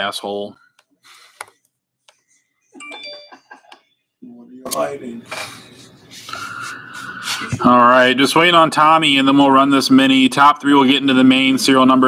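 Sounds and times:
electronic bell-like chime: 2.8 - 3.8.

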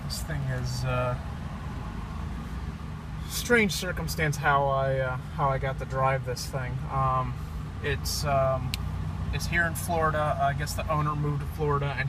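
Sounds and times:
car road and cabin rumble: 0.0 - 12.0.

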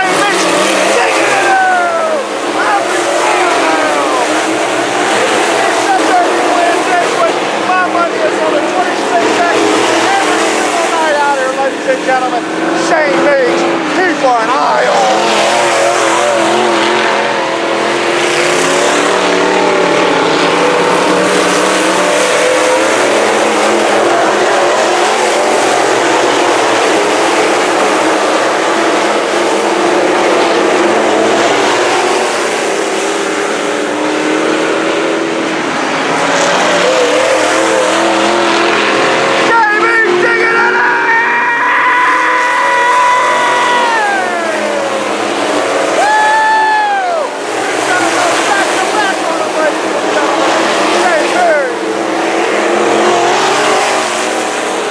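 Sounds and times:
race car engines droning: 0.0 - 54.9.

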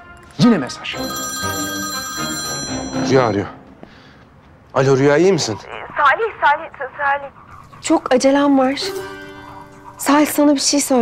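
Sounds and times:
mobile phone ringtone: 0.8 - 3.9.

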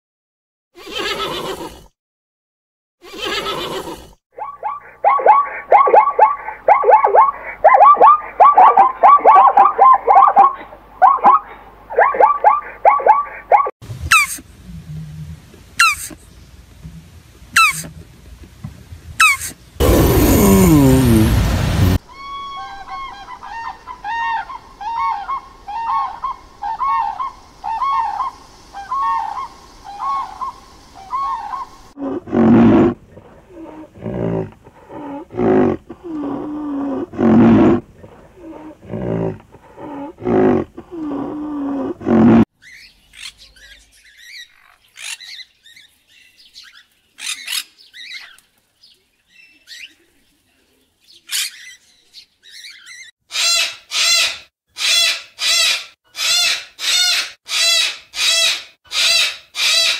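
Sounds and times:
cockatoo squawking: 4.4 - 14.4, 15.8 - 16.2, 17.6 - 17.9, 19.2 - 21.2, 22.1 - 31.7, 52.4 - 59.9
crane trumpeting calls: 4.4 - 14.4, 17.6 - 17.9, 19.2 - 32.0, 53.3 - 59.9
loud low animal calls: 19.2 - 42.5.

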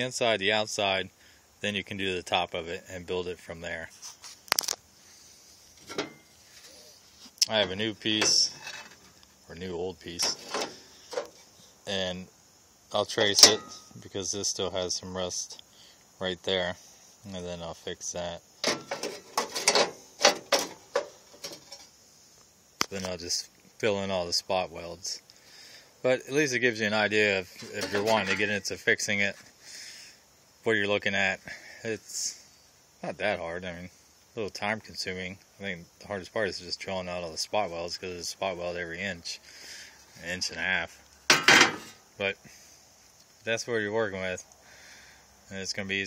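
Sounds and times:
metallic scrapes and knocks: 5.8 - 6.8, 7.6 - 9.2, 10.2 - 11.5, 13.3 - 14.0, 18.6 - 21.9, 27.6 - 28.6, 41.3 - 42.0
sheet metal clattering: 18.6 - 21.8, 41.3 - 42.0.

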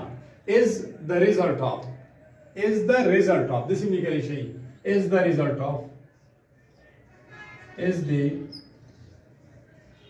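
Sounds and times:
marker squeak on whiteboard: 8.3 - 9.3.

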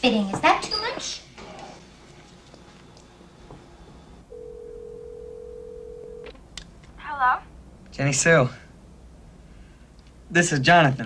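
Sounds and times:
telephone ringing tone: 4.3 - 6.3.

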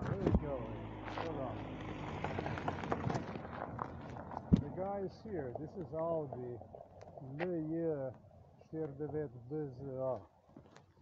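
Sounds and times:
man speaking: 0.0 - 1.6, 4.6 - 6.6, 7.2 - 10.2.

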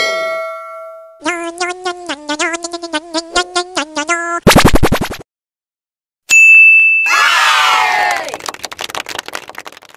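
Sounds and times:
electronic ding: 6.3 - 7.1
crowd cheering: 7.1 - 9.8.

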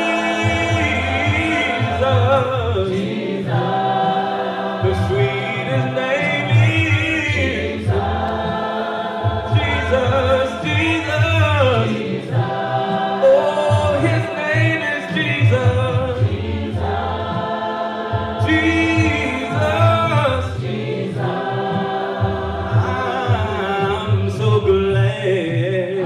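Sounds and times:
man singing through microphone: 0.0 - 3.7, 4.8 - 8.0, 9.5 - 12.4, 13.2 - 16.4, 18.4 - 20.9, 22.7 - 26.0
voices singing in harmony: 0.0 - 26.0.

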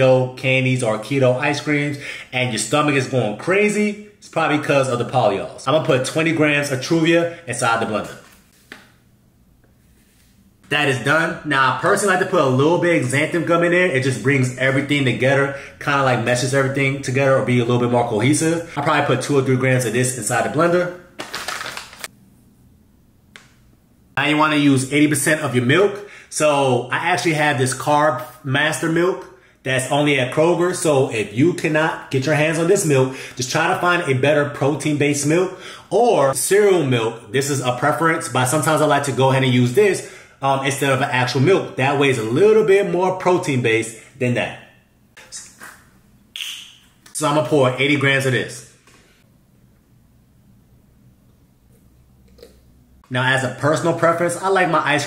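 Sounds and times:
plastic pouch crinkling: 21.1 - 22.1.

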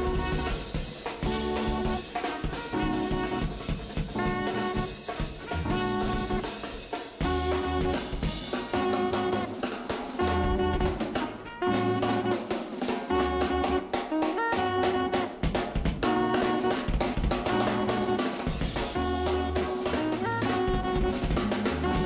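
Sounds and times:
organ: 0.0 - 6.6
walking bass line: 0.0 - 9.6, 10.2 - 22.0
drum kit hits: 0.0 - 22.0
trumpet: 0.0 - 22.0.

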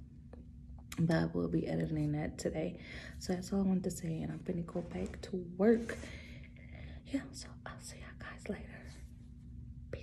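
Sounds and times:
steady low hum: 0.0 - 10.0
woman speaking softly: 0.9 - 6.2, 7.0 - 9.1.

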